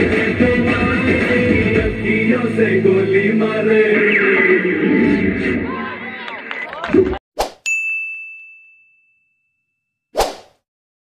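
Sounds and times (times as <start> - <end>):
short swish: 7.4 - 7.6, 10.2 - 10.6
bright bell-like ding: 7.7 - 9.3.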